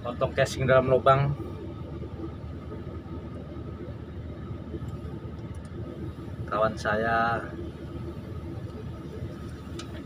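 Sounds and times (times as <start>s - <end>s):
faint steady whine: 0.0s - 10.0s.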